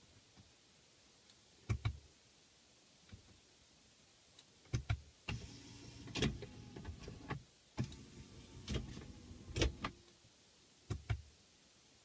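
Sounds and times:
low steady hum: 5.3s - 10.1s.

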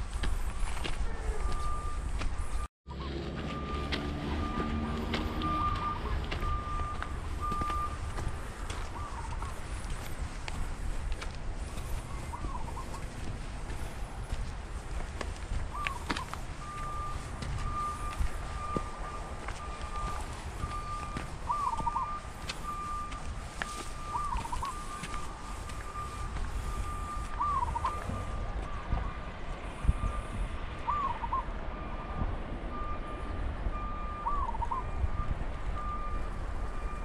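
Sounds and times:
footsteps: 0.0s - 29.0s
bird looping call: 8.8s - 9.7s, 12.0s - 13.2s, 15.7s - 28.4s, 30.8s - 31.5s, 34.2s - 35.0s.

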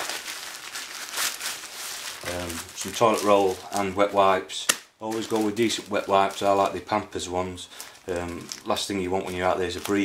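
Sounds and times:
plastic bag crinkling: 0.0s - 4.4s, 5.0s - 10.0s.

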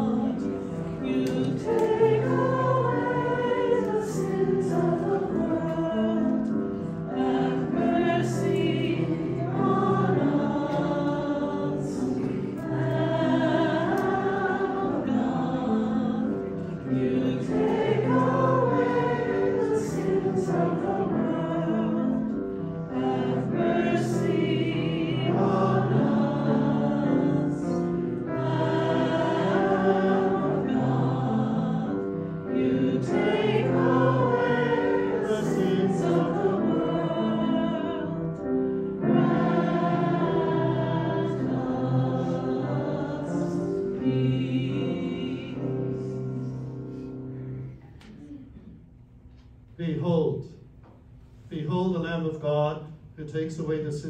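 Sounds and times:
choir singing a sacred piece: 0.0s - 47.8s.

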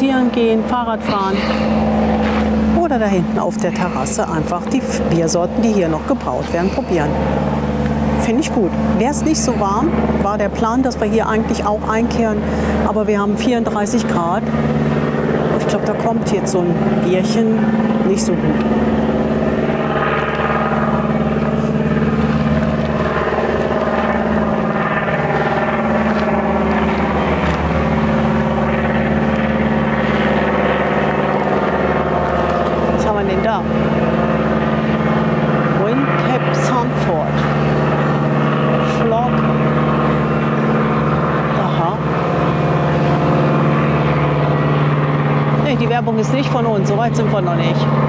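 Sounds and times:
small aircraft engine drone: 0.0s - 48.0s.

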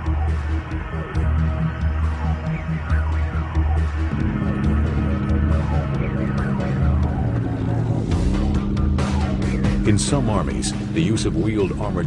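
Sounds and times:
armored car engine running: 2.8s - 11.7s.

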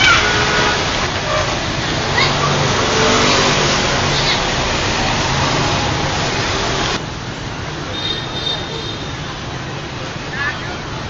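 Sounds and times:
city street traffic hum: 0.0s - 11.0s.

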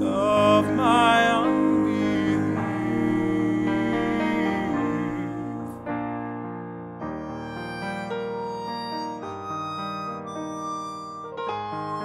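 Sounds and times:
harmonica playing hymn melody: 7.1s - 12.0s.

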